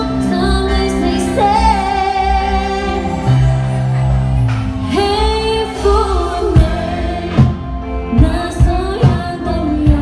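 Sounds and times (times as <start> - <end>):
woman singing: 0.0 - 3.4, 4.9 - 10.0
live band playing: 0.0 - 10.0.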